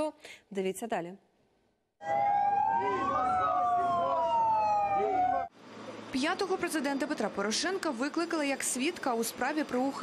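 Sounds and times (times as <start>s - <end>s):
siren wailing: 2.0s - 5.6s.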